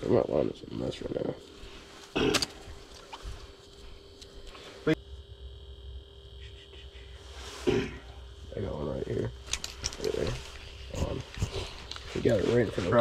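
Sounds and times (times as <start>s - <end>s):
faint steady hum: 0.0s - 13.0s
man clearing his throat: 2.1s - 2.5s, 7.6s - 8.1s.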